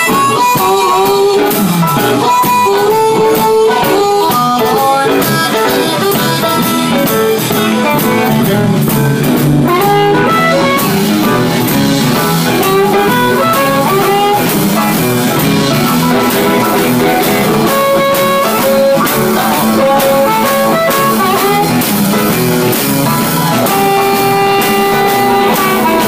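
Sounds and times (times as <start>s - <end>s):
drum kit beat: 0.0s - 26.0s
lead guitar bending notes: 0.0s - 26.0s.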